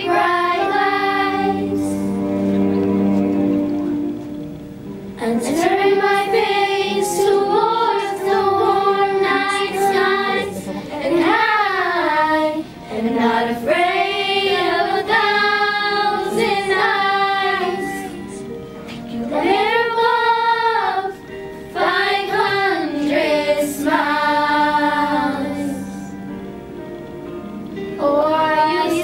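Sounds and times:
girls singing a pop ballad: 0.0 - 2.0, 5.2 - 26.2, 28.0 - 29.0
recorded backing track: 0.0 - 29.0.

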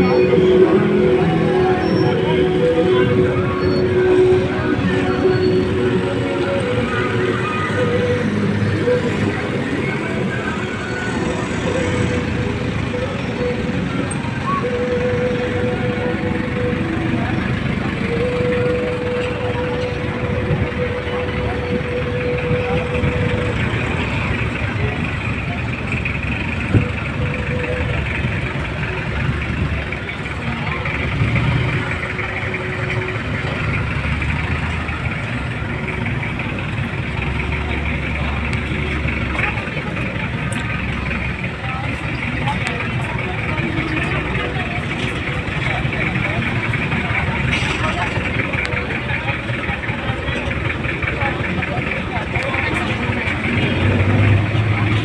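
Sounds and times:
people talking: 0.0 - 55.0
vehicle engines idling: 0.0 - 55.0.

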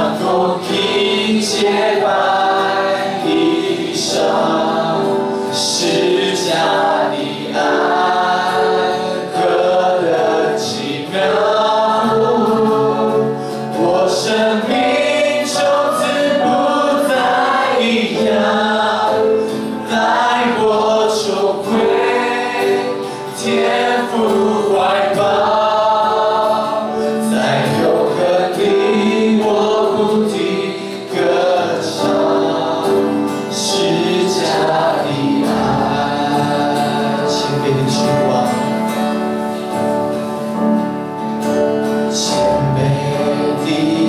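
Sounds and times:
man singing into a microphone: 0.0 - 39.1, 42.0 - 44.0
group singing a worship song: 0.0 - 44.0.

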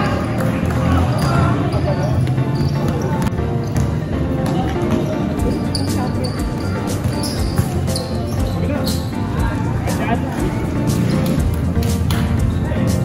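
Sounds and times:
voices: 0.0 - 11.5
background music: 0.0 - 13.0
basketball bouncing on concrete: 2.2 - 5.6, 6.3 - 8.6.

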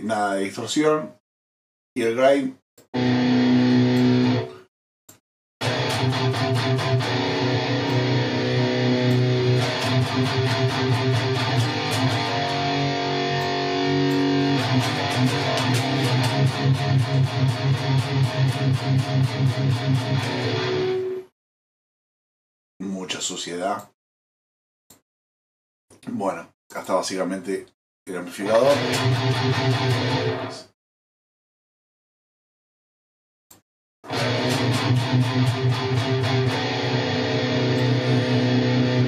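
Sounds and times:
distorted electric guitar riffing: 3.0 - 4.6, 5.6 - 21.2, 28.4 - 30.7, 34.1 - 39.0.

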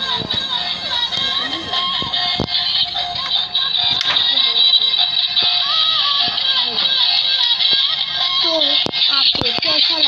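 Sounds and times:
synthetic singing voice: 0.0 - 10.0.

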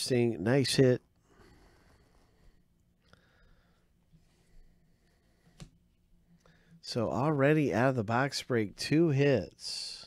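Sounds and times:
man speaking: 0.0 - 1.1, 6.8 - 10.0.

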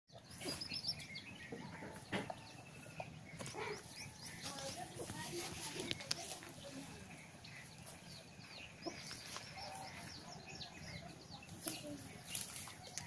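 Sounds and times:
small birds chirping: 0.1 - 13.0
faint voices: 1.3 - 13.0.

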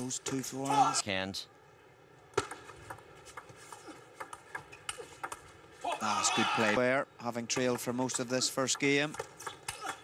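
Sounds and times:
faint hall hum: 0.0 - 10.0.

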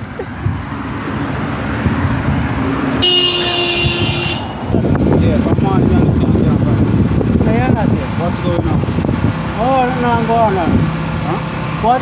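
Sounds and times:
road traffic passing: 0.0 - 12.0
car horn: 2.9 - 4.9.

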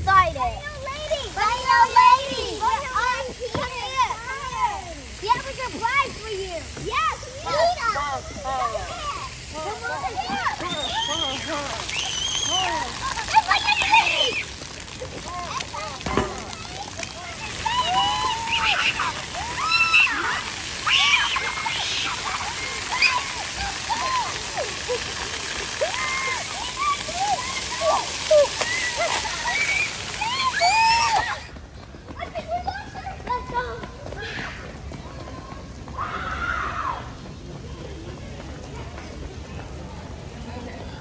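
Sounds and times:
children shouting excitedly: 0.0 - 14.6, 15.2 - 37.2
fountain jets spraying water: 0.0 - 41.0.

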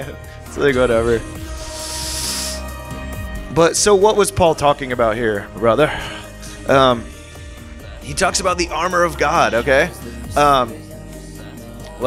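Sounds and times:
background music with held notes: 0.0 - 12.0
steady hiss: 1.1 - 2.8.

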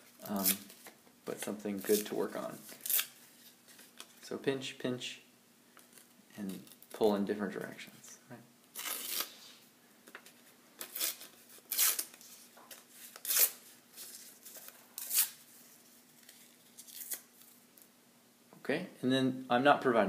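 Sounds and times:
paper tearing: 1.8 - 4.0, 8.7 - 9.5, 10.8 - 12.4, 13.0 - 15.4, 16.2 - 17.6.

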